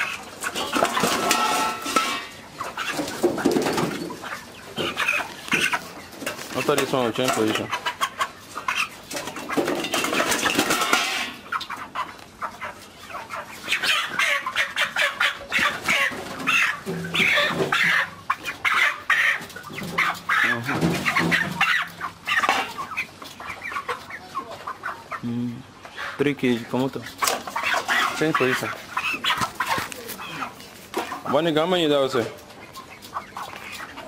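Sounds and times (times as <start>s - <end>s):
chickens clucking: 0.0s - 34.0s.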